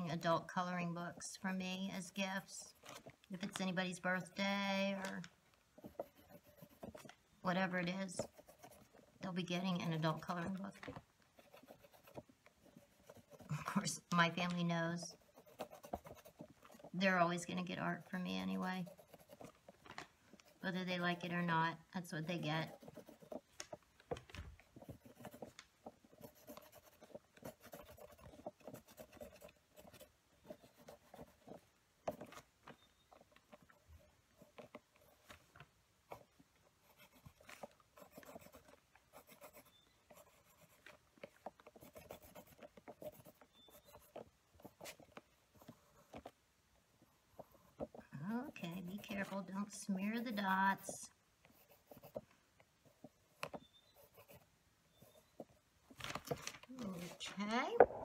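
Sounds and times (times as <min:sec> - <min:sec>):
pen tapping and scratching paper: 0:00.7 - 0:35.4, 0:36.1 - 0:46.4, 0:47.3 - 0:52.3.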